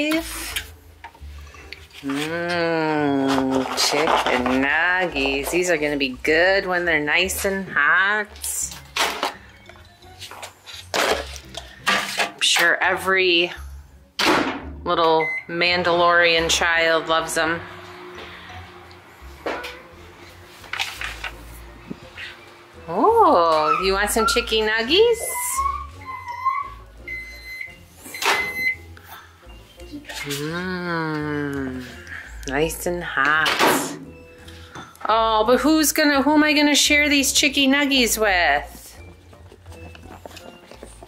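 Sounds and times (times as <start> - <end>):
microwave beeping: 15.1 - 15.6, 27.0 - 28.9.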